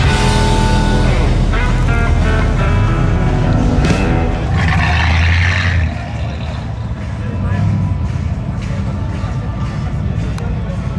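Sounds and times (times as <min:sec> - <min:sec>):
car engine driving away: 0:01.3 - 0:08.0.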